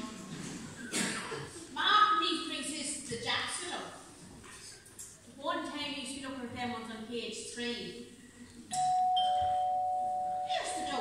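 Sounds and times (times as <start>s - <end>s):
two-tone doorbell chime: 8.8s - 11.0s.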